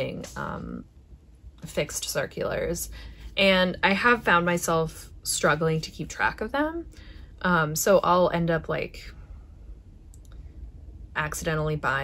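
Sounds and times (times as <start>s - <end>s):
low room hum: 0.0s - 12.0s
faint small clicks: 10.1s - 10.4s.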